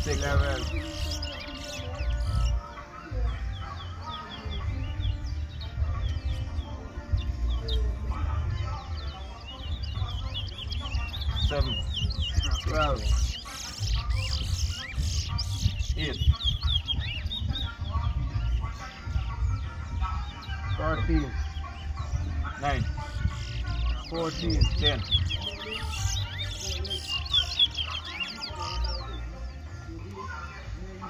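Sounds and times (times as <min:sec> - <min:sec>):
finches singing whistled phrases: 0:00.0 - 0:31.0.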